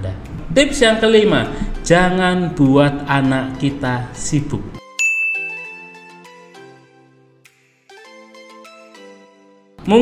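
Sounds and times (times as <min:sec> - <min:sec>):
soft background music: 0:00.0 - 0:10.0
bright chime: 0:04.9 - 0:06.2.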